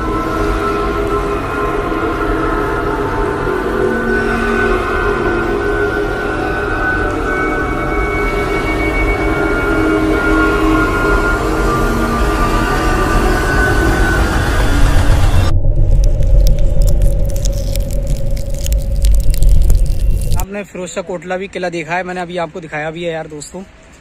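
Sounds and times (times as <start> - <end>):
dramatic droning music: 0.0 - 20.5
crackly low rumble: 13.0 - 20.5.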